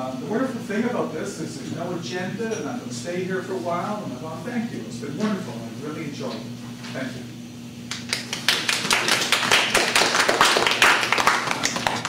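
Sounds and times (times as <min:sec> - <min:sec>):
audience applauding: 0:07.9 - 0:12.0.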